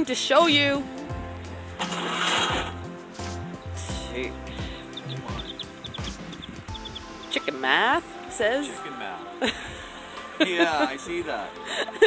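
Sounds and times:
background music with bass line: 0.0s - 12.0s
wooden door scraping open: 1.8s - 2.8s.

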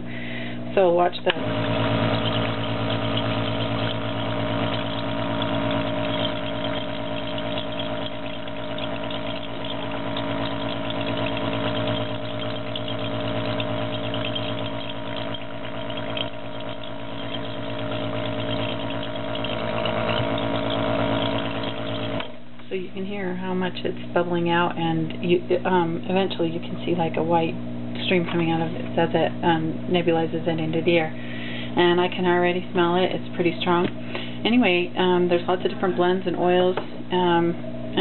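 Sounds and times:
air compressor humming: 0.0s - 22.8s, 23.4s - 38.0s
air bubbling through oil: 1.2s - 22.4s.

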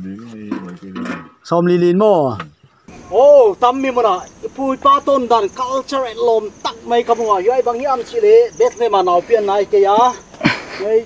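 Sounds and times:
man talking: 0.0s - 11.0s
high-pitched insect drone: 2.8s - 10.4s.

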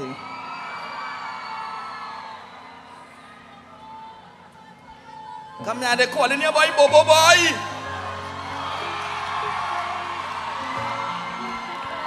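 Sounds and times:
crowd cheering and whooping: 0.0s - 5.8s, 7.0s - 12.0s
live band sustained chords: 5.6s - 12.0s.

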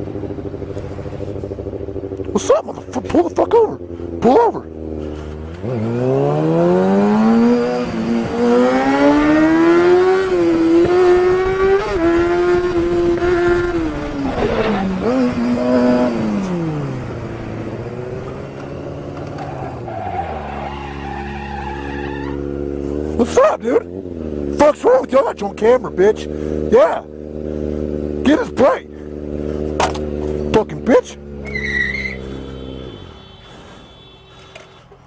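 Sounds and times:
motorcycle idling: 0.0s - 5.6s, 16.1s - 19.9s, 22.2s - 35.0s
motorcycle engine revving: 0.0s - 33.8s.

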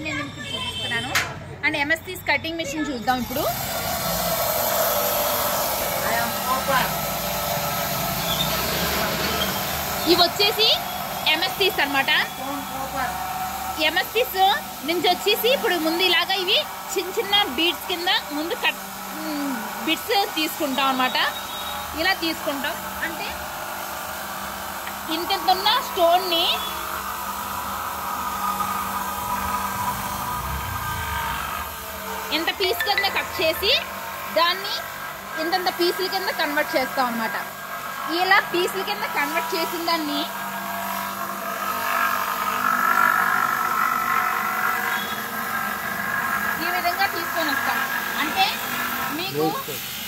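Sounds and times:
electric motor humming: 2.6s - 50.0s.

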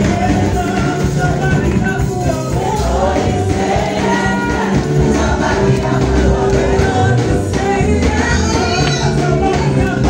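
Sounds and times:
gospel choir singing: 0.0s - 10.0s.

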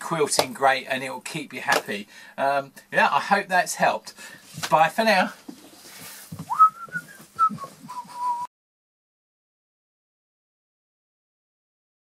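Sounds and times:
man whistling: 6.5s - 8.5s.

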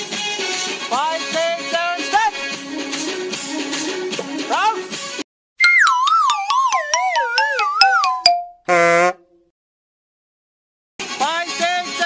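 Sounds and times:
music: 0.0s - 8.5s, 11.0s - 12.0s
buzzy honk: 8.7s - 9.4s.

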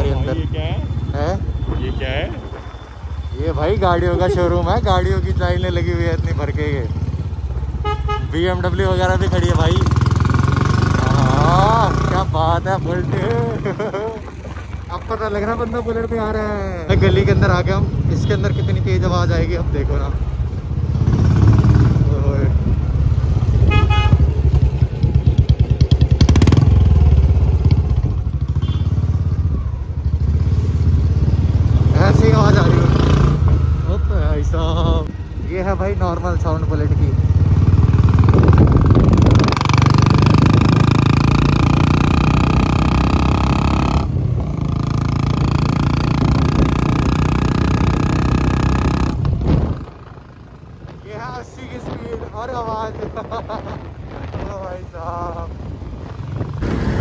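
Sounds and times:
motorcycle engine running loud: 3.4s - 18.2s, 20.8s - 51.0s.

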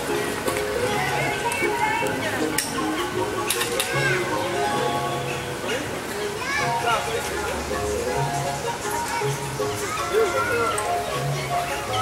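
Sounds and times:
children calling: 0.0s - 12.0s
people chattering and calling out: 0.0s - 12.0s.

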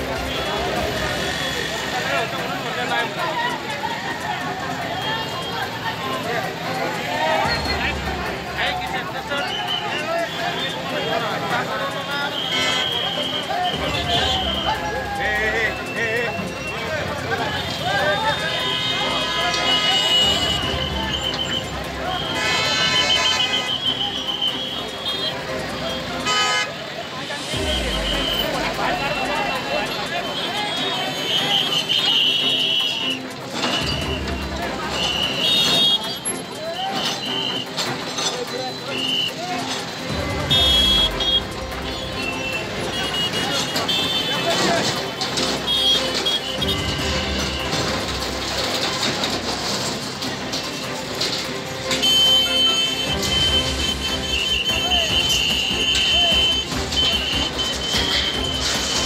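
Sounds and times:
crowd talking: 0.0s - 59.0s
vehicle horn toot: 12.3s - 14.6s, 18.4s - 25.3s, 26.2s - 26.8s, 30.2s - 33.1s, 34.9s - 36.4s, 40.5s - 44.8s, 45.7s - 47.8s, 51.9s - 59.0s
metal sheets crashing and scraping: 43.2s - 59.0s.

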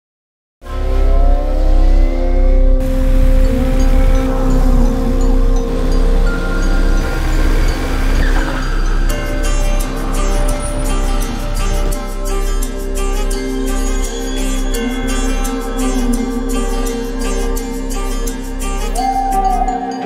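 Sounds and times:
heavy pulsing bass: 0.6s - 19.7s
held synth notes: 0.6s - 20.0s
motorcycle engines revving: 0.7s - 18.4s.

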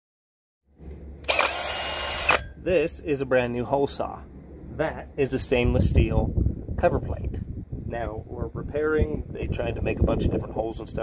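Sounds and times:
cordless drill spinning: 1.2s - 2.5s.

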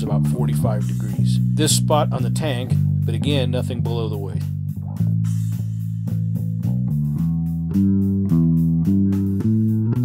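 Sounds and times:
bass guitar plucked notes: 0.0s - 10.0s.

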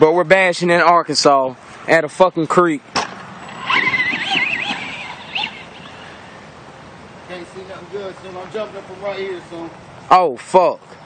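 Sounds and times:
rc car motor whining: 3.4s - 6.4s.

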